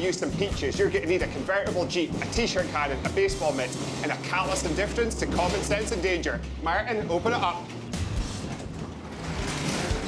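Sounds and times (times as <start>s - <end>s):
metal roll-up door rattling: 0.1s - 6.5s, 7.2s - 10.0s.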